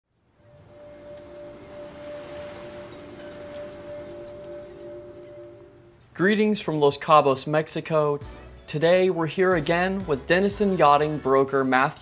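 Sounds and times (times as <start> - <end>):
fainter lower tones: 0.1 - 6.5
held ringing tone: 0.4 - 6.1.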